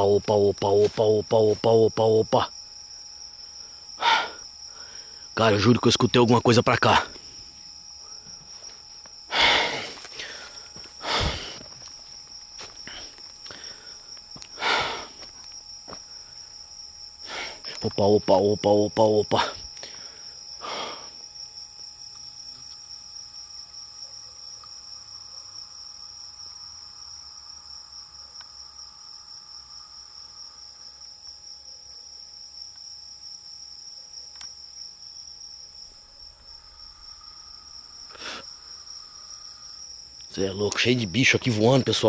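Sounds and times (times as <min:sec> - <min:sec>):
insects trilling high-pitched: 0:00.0 - 0:42.0.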